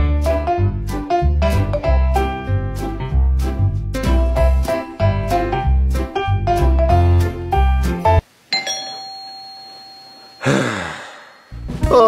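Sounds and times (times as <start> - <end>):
doorbell chime: 8.6 - 11.7.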